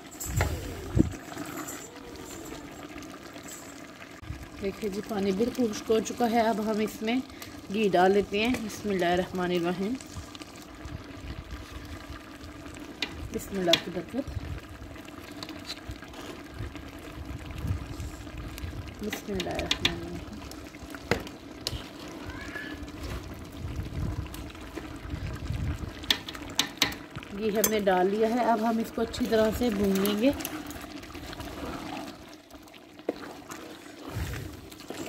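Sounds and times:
pot simmering: 0:00.0 - 0:35.0
metal spatula knocking on pot: 0:26.1 - 0:27.0.

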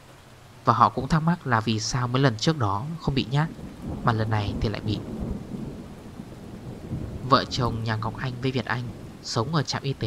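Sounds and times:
steady rain: 0:00.0 - 0:10.0
low rumble of thunder: 0:02.8 - 0:10.0.

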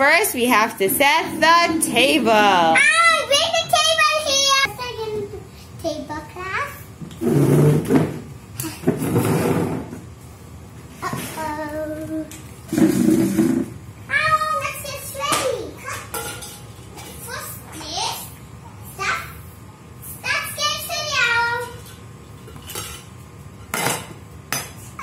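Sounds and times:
young children's voices: 0:02.6 - 0:06.8, 0:11.0 - 0:12.4, 0:14.1 - 0:16.1, 0:17.0 - 0:19.4, 0:20.1 - 0:21.8.

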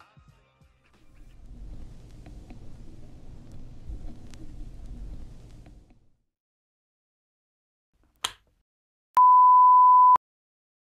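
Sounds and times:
electronic beep: 0:09.2 - 0:10.2.

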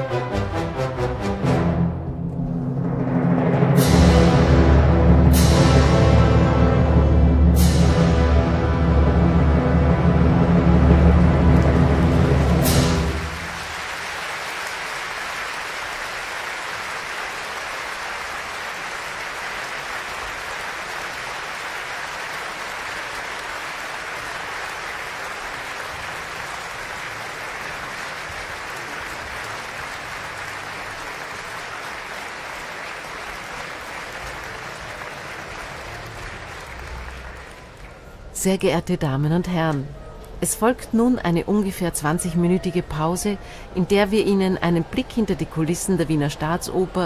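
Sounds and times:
orchestra chord: 0:00.0 - 0:13.9
audience applause: 0:10.1 - 0:38.3.

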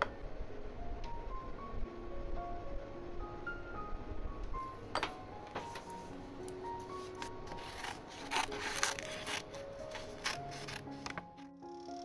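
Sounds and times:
soft background music: 0:00.0 - 0:12.0
cardboard box rustling scrapes: 0:07.0 - 0:11.2.

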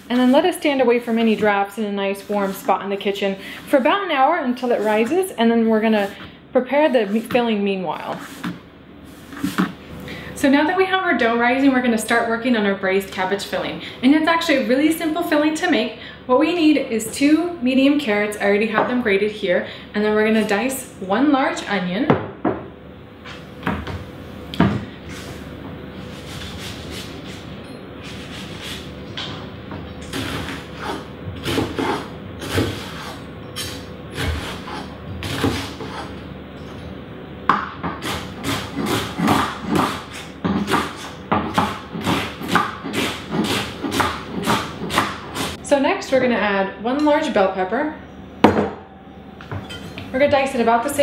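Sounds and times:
knife chopping on wooden board: 0:37.5 - 0:45.6.

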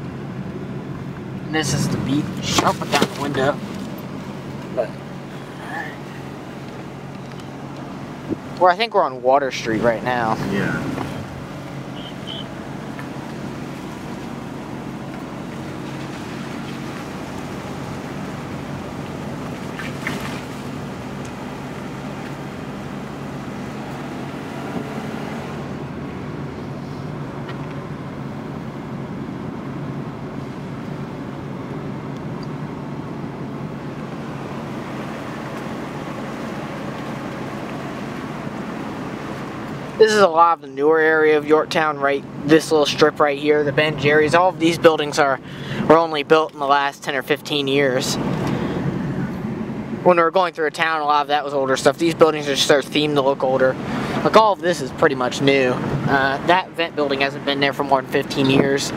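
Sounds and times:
car road and engine noise: 0:00.0 - 0:58.9.

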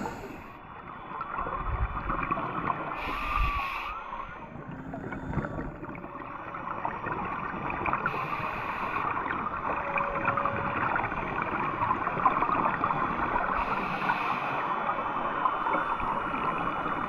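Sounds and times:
faint whale calls: 0:02.9 - 0:07.0, 0:08.0 - 0:11.8, 0:13.3 - 0:17.0.

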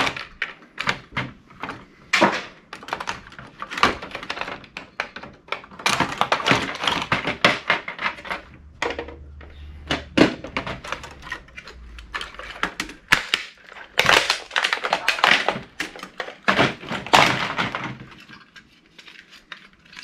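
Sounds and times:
plastic and metal clattering: 0:00.0 - 0:20.0.

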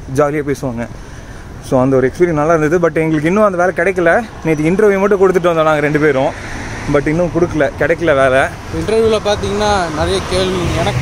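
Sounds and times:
low road traffic noise: 0:00.0 - 0:11.0
man speaking: 0:01.6 - 0:11.0.

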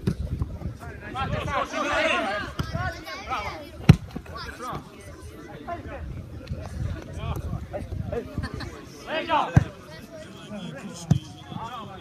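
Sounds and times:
players shouting: 0:01.1 - 0:05.9, 0:08.5 - 0:12.0.

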